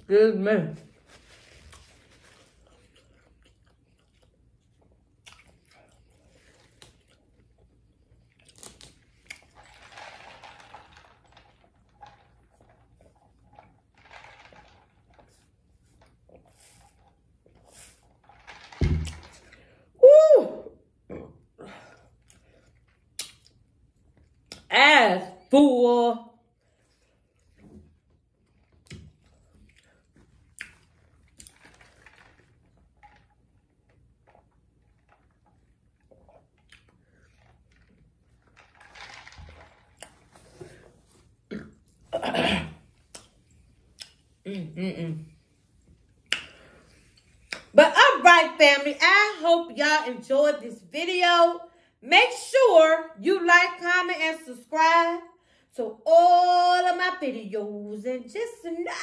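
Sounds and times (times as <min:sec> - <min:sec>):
person drinking and swallowing: 0:15.9 - 0:19.8, 0:39.5 - 0:44.4
sipping through a straw: 0:16.4 - 0:18.3
tumbler thump on table: 0:18.8 - 0:19.4.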